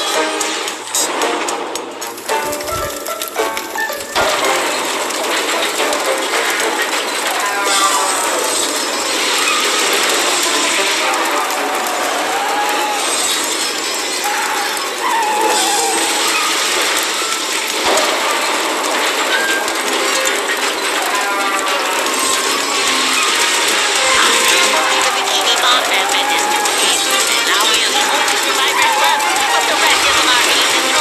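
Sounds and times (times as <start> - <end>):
mechanical clattering and ticking: 0.0 - 31.0.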